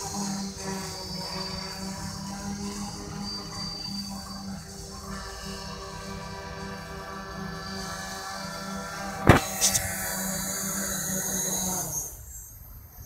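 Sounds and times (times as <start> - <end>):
drone motors whining: 0.0 - 12.6
loud sharp crack: 9.2 - 9.9.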